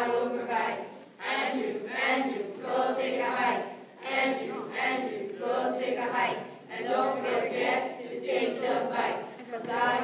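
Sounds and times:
children chanting in unison: 0.0s - 10.0s.

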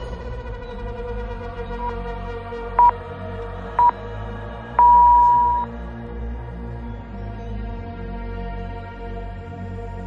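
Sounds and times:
background music: 0.0s - 10.0s
interval timer beeps: 4.8s - 5.7s.

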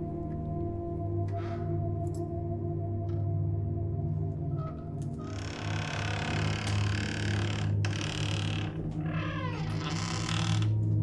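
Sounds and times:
low music drone: 0.0s - 11.0s
wooden door creaking open: 4.6s - 11.0s.

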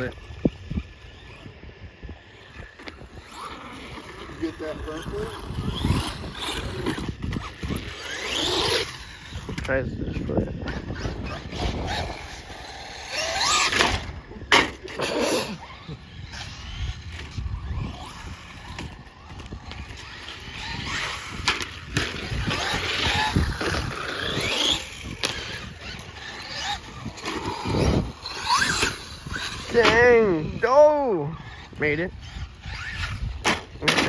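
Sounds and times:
electric motor whine: 0.0s - 34.0s.

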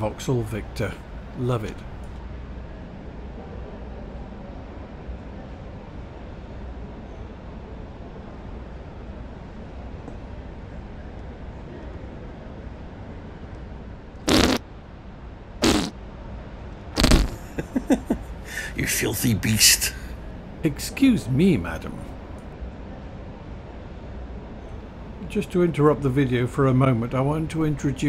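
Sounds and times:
fart-like blasts: 14.3s - 14.6s, 15.6s - 16.0s, 17.0s - 17.5s.

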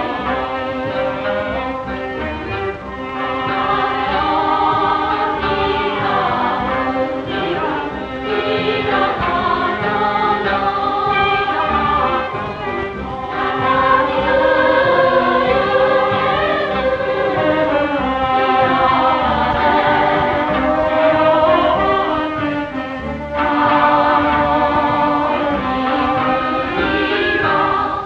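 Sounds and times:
choir singing music: 0.0s - 28.0s.

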